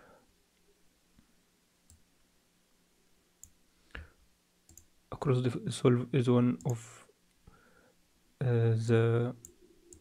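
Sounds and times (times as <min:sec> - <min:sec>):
faint steady hum: 0:00.0 - 0:10.0
computer mouse clicks: 0:04.7 - 0:04.9, 0:09.4 - 0:10.0.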